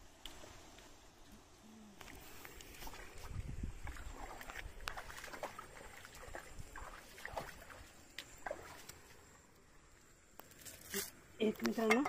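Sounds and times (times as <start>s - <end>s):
river water splashing: 1.9s - 11.2s
dripping water: 2.0s - 9.1s.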